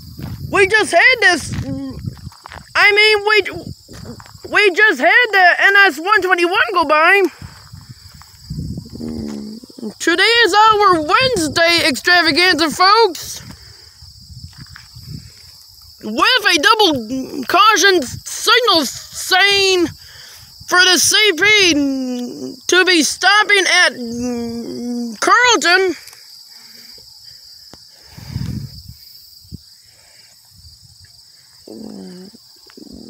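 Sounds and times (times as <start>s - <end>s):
insects buzzing: 0.0s - 33.0s.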